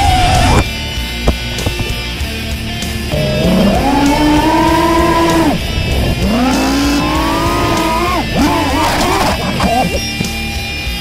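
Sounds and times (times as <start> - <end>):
drone motors whining: 0.0 - 10.7.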